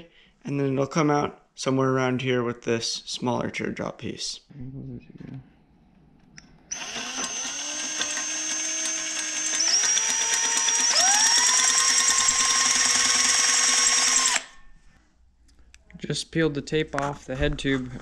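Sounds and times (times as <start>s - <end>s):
power drill motor whine: 6.7s - 14.6s.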